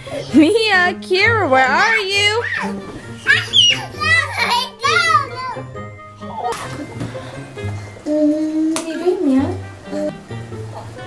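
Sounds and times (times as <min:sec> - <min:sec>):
music playing: 0:00.0 - 0:11.0
toddlers squealing: 0:01.7 - 0:05.6.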